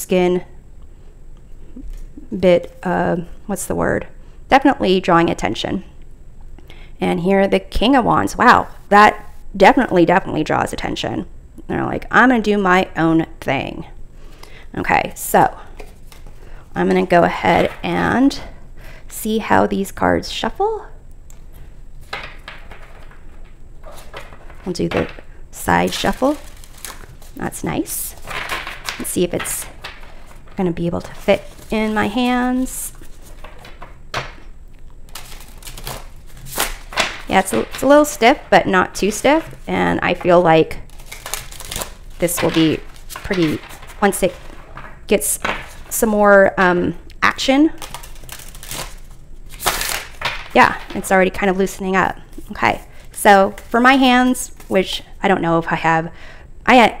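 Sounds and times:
cards rustling: 15.7 - 17.9, 21.4 - 33.9, 35.1 - 46.0, 47.8 - 51.2, 52.3 - 54.8
cards slapping: 35.1 - 37.9, 47.8 - 51.0.

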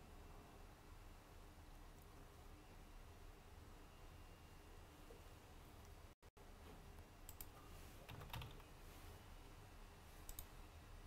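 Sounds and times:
keyboard and mouse clicks: 7.3 - 8.7, 10.3 - 10.5.

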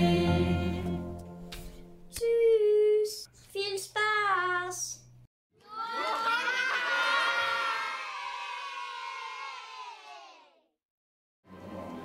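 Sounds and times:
children cheering: 5.6 - 10.6.

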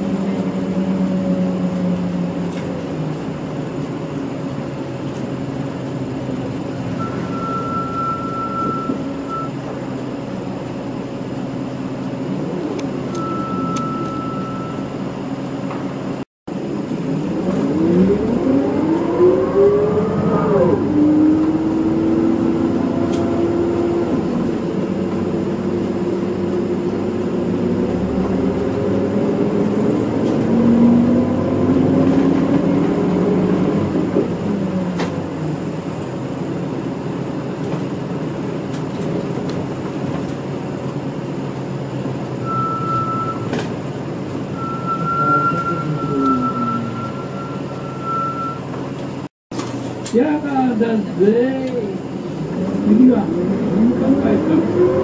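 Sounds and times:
bus diesel engine pulling away: 0.0 - 50.2, 51.5 - 55.0.

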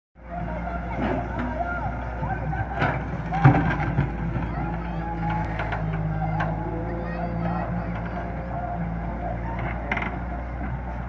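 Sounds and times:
diesel engine running: 0.2 - 11.0.

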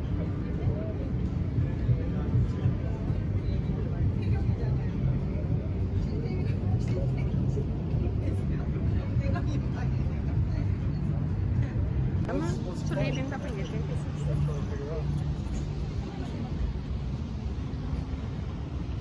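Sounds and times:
people talking: 0.0 - 17.6.

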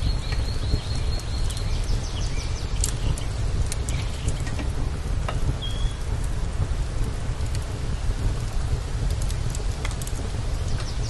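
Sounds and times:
wood fire crackling: 0.0 - 11.0.

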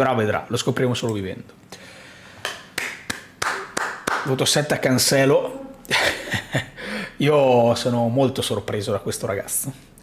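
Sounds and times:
short sharp slaps: 2.4 - 4.4.

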